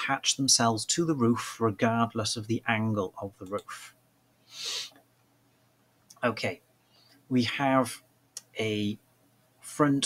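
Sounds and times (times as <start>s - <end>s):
short hissy breath: 4.4s - 5.0s.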